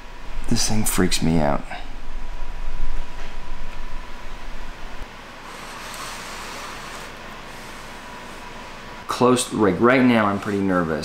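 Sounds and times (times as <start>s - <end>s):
steady hiss: 0.0s - 11.0s
microphone handling rumble: 1.8s - 5.0s.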